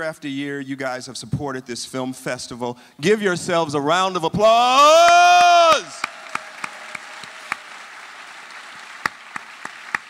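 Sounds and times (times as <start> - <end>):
audience applauding: 5.1 - 10.0.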